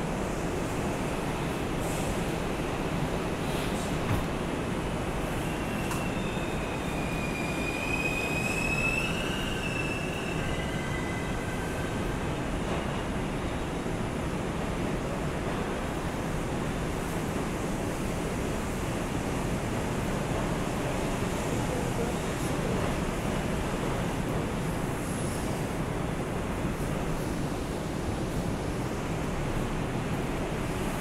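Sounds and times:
subway car rumble: 0.0 - 31.0
high wheel squeal: 5.4 - 11.8.

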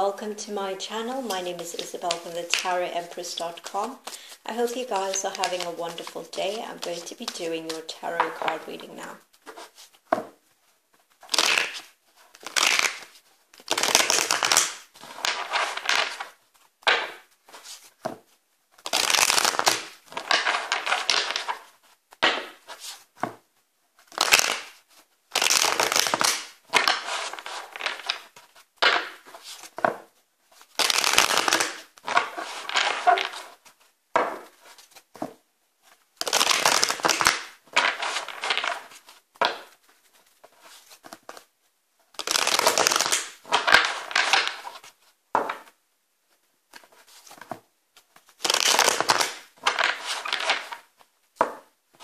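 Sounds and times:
cards being shuffled: 1.1 - 10.4, 11.0 - 23.4, 24.0 - 35.4, 36.2 - 41.5, 42.2 - 45.8, 46.7 - 51.6.

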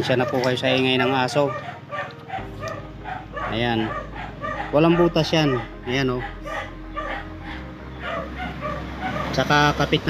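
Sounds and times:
dog barking: 0.0 - 9.5.

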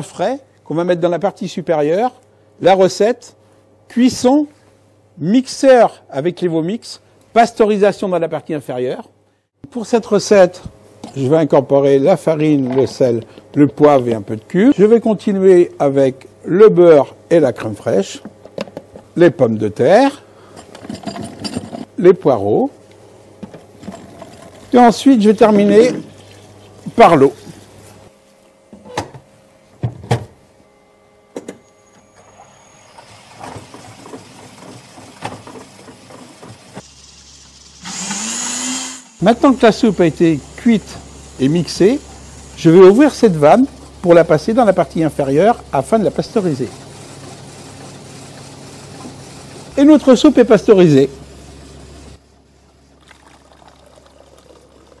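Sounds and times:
soup machine running: 23.4 - 27.6, 31.3 - 55.0
mixing blade whirring loudly: 32.0 - 50.8
thick soup pouring into jug: 53.0 - 55.0.

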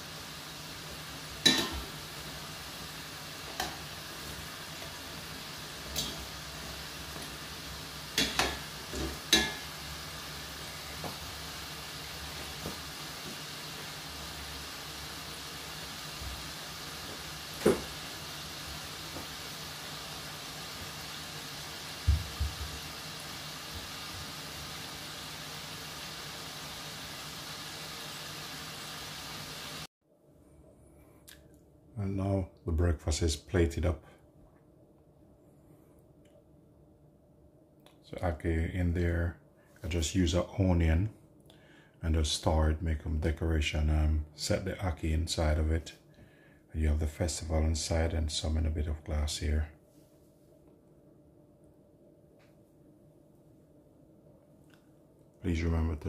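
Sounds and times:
oil sizzling: 0.0 - 29.9.

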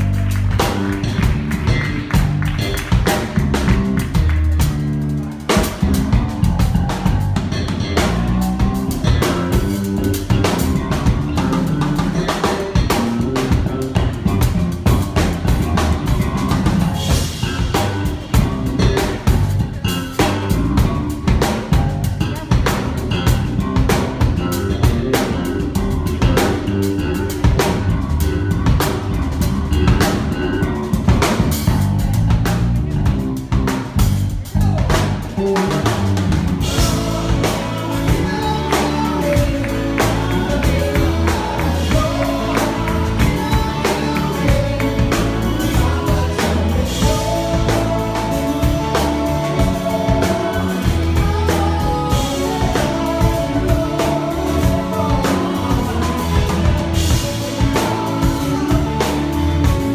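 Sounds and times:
drum kit beat: 0.0 - 59.9
electric guitars: 0.0 - 59.9.

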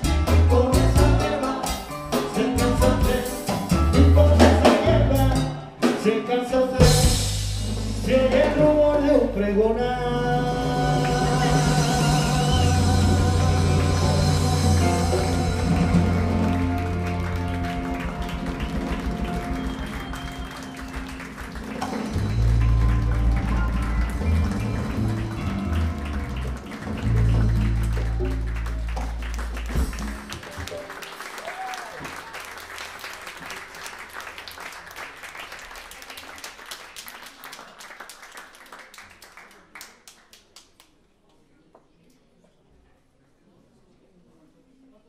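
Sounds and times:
live band with piano and congas: 0.0 - 32.3
audience applause: 12.6 - 40.9.

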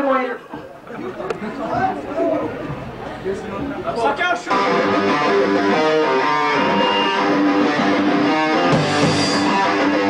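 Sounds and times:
people talking over one another: 0.0 - 5.6.

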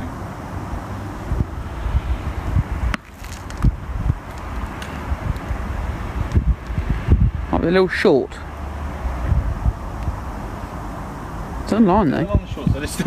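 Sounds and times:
wind buffeting microphone: 0.0 - 13.0.

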